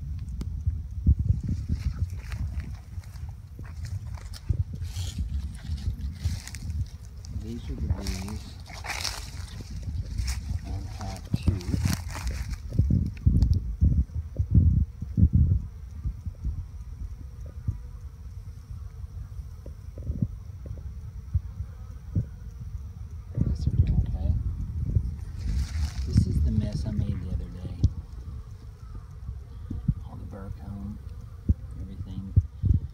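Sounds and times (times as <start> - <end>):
phone microphone handling rumble: 0.0 - 17.8, 23.3 - 30.2
crackly rustling: 0.2 - 14.4, 24.5 - 30.2.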